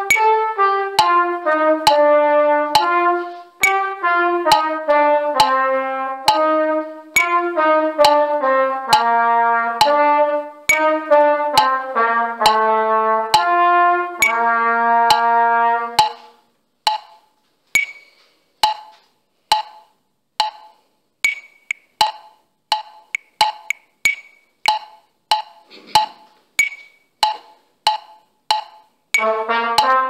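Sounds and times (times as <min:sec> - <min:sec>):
metronome clicks: 0:00.0 - 0:12.7, 0:13.3 - 0:15.4, 0:16.0 - 0:30.0
trumpet playing short notes: 0:00.0 - 0:16.4, 0:29.2 - 0:30.0.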